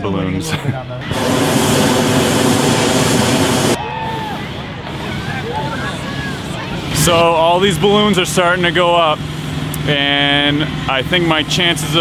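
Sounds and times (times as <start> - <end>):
propane burner blast: 1.0 - 7.7
crowd chatter: 3.7 - 9.0.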